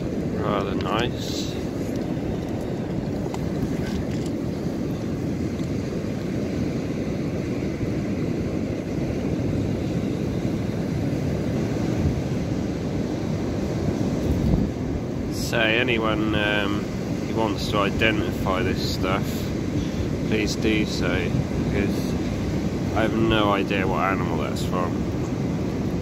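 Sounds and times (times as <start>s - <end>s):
sea surf on shingle: 0.0s - 26.0s
wind rumbling over microphone: 0.0s - 26.0s.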